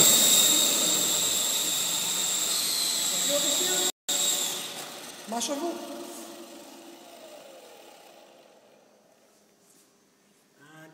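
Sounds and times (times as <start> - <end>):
toy helicopter motor spinning down: 0.0 - 9.1.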